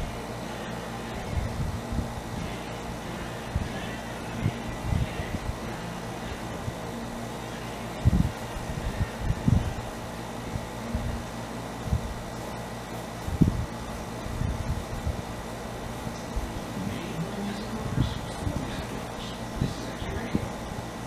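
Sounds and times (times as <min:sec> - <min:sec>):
radio playing rock and roll: 0:00.0 - 0:21.0.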